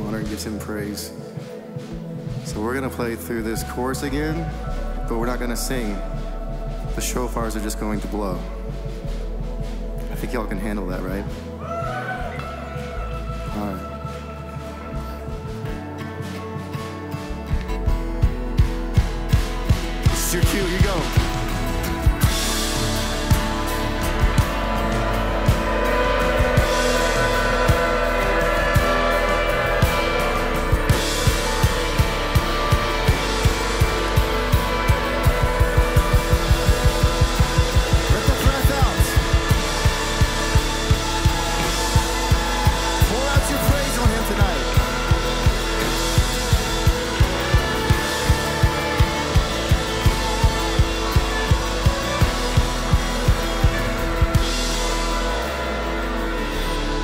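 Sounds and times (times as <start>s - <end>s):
drum kit beat: 0.0s - 57.0s
worship band playing: 0.0s - 57.0s
shofar blasts: 22.9s - 57.0s.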